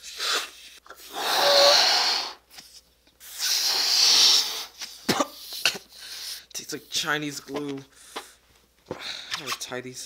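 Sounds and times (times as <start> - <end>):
person spluttering and coughing: 5.0 - 5.9.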